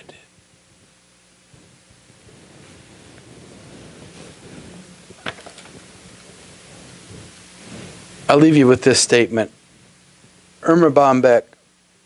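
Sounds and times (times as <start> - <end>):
faint low hum: 0.0 - 12.0
low hiss: 0.0 - 12.0.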